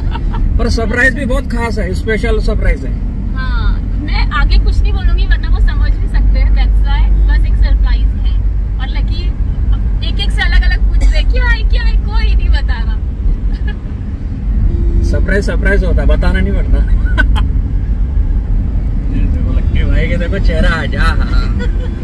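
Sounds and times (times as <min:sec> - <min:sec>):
car driving low rumble: 0:00.0 - 0:22.0
people talking: 0:03.4 - 0:09.3, 0:10.0 - 0:13.0.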